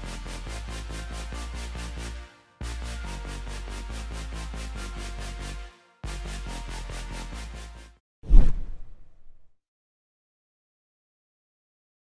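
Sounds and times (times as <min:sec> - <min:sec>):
deep whoosh sound effect: 0:08.3 - 0:09.4.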